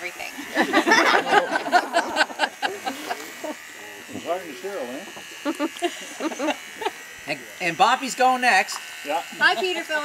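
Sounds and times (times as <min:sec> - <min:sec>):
hair clippers buzzing: 0:00.0 - 0:10.0.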